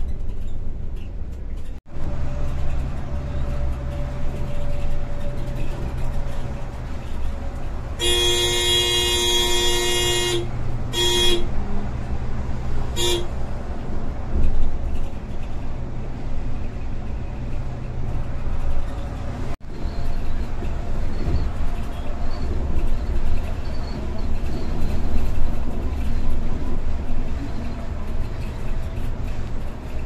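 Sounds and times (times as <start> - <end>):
bus engine and tyres droning: 0.0 - 30.0
vehicle horn blasts: 8.0 - 11.6, 13.0 - 13.4.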